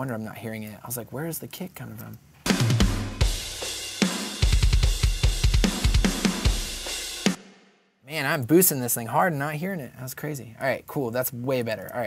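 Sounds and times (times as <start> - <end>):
fast punk drum beat: 2.5 - 7.4
rapid kick drum hits: 2.5 - 7.5.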